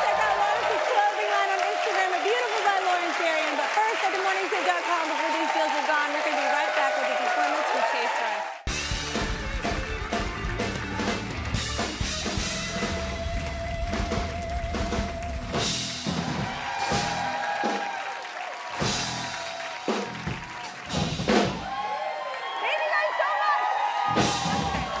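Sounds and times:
live band playing upbeat music: 8.7 - 17.7.

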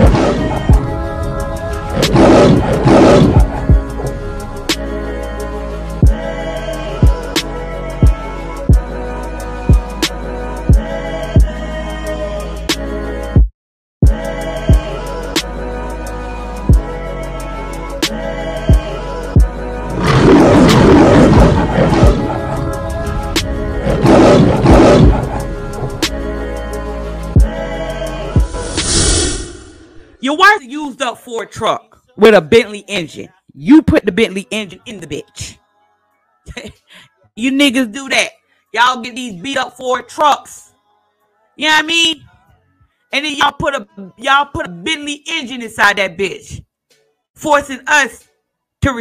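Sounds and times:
lion roars: 0.0 - 4.5, 19.9 - 26.1
intro music: 0.0 - 8.8, 19.3 - 30.3.

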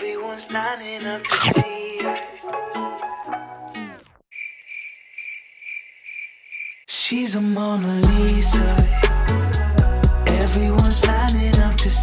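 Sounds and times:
pop song slowing to a halt: 0.0 - 3.2, 6.9 - 12.0
cricket chirping: 4.3 - 6.9.

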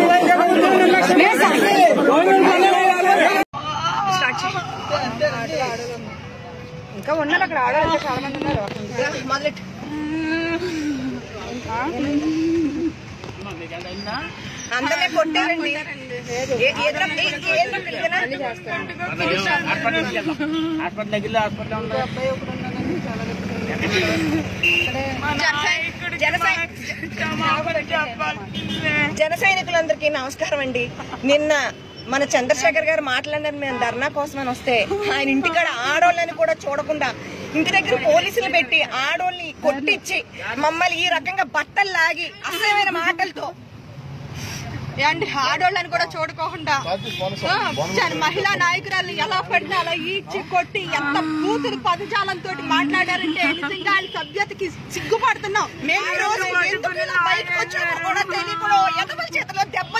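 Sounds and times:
crowd talking and shouting: 0.0 - 43.0
women talking: 14.7 - 21.4, 22.8 - 43.6, 45.0 - 59.9.

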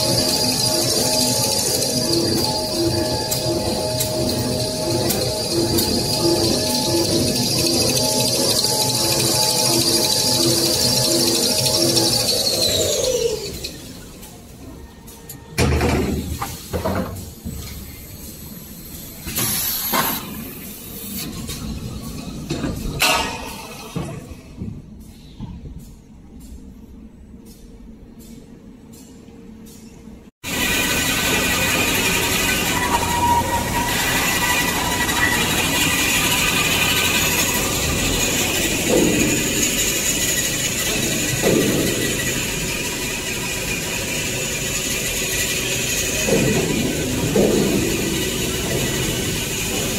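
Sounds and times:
production line machine whine: 0.0 - 49.9.

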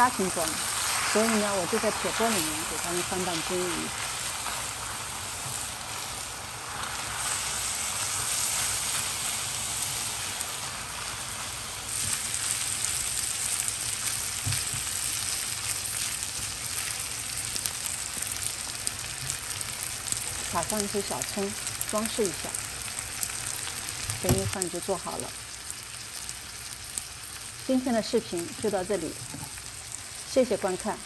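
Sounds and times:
food sizzling in skillet: 0.0 - 31.0.

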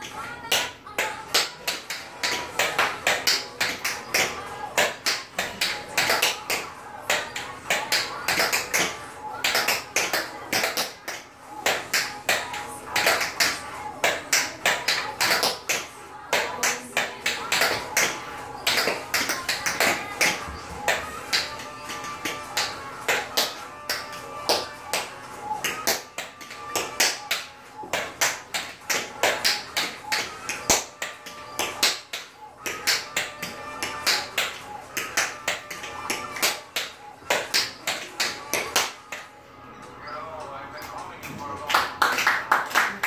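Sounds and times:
recorded music: 0.0 - 43.0
tap shoes on tile floor: 0.1 - 39.3.

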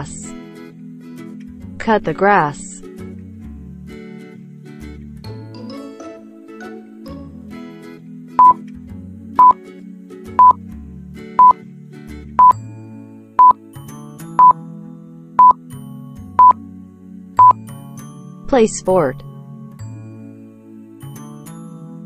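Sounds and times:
soft background music: 0.0 - 22.0.

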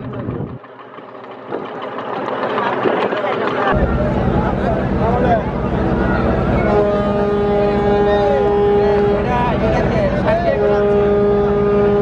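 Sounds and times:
boat engines droning: 0.0 - 12.0
boat horn blast: 3.8 - 12.0.

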